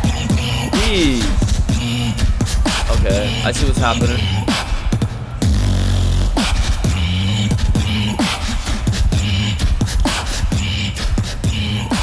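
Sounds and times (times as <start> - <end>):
beatboxing: 0.0 - 12.0.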